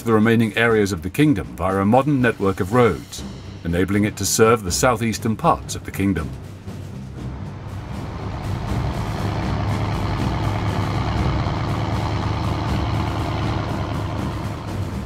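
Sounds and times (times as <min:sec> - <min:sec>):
low rumble: 0:07.2 - 0:15.0.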